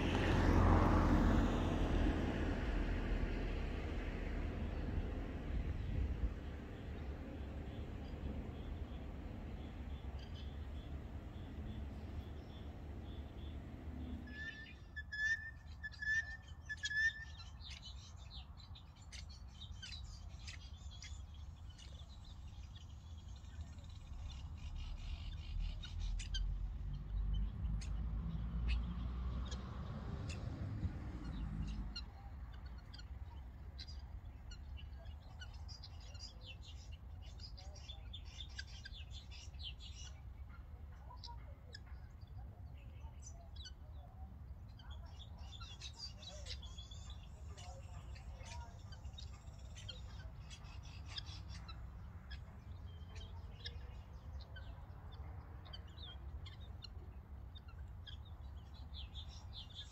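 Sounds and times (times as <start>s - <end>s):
birds chirping: 0.0s - 59.9s
whistled bird notes: 10.0s - 18.0s.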